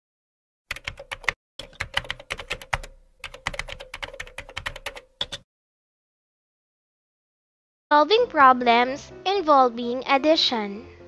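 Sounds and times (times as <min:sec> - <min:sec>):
keyboard typing: 0:00.7 - 0:05.4.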